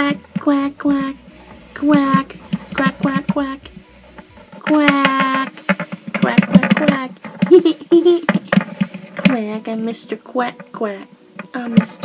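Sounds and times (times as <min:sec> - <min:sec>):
toys clicking and knocking: 0:00.0 - 0:12.0.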